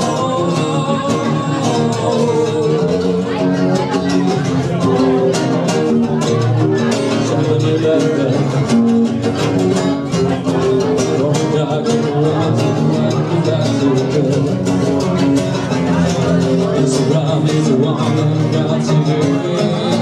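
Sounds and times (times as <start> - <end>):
acoustic guitars strumming: 0.0 - 20.0
man singing into microphone: 0.0 - 20.0.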